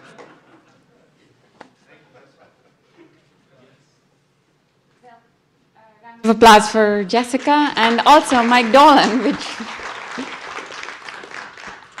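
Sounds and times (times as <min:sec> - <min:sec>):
audience applauding: 0:07.3 - 0:12.0.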